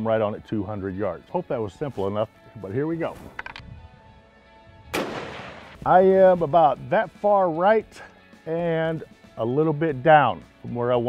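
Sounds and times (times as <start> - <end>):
faint background music: 0.0 - 11.0
rifle shot: 4.9 - 5.8.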